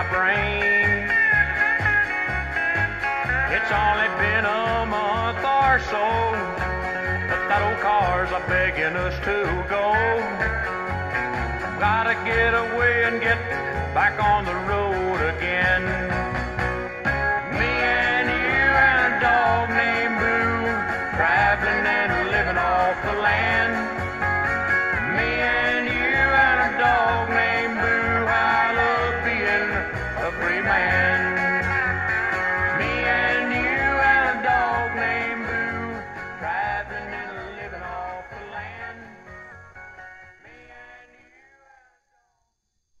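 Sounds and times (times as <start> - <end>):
instrumental pop music from speaker: 0.0 - 41.5.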